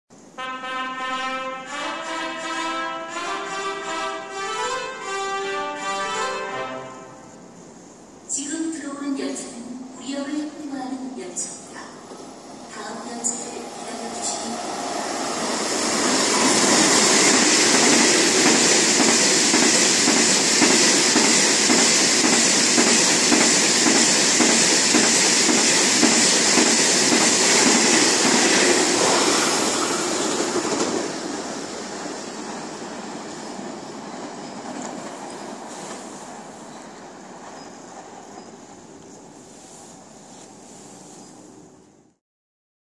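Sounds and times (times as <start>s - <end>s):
high-speed train passing: 0.1s - 42.2s.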